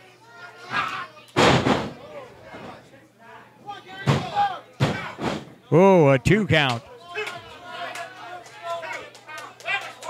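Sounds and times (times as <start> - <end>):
body crashing onto ring canvas: 1.4 - 2.0, 4.0 - 5.6.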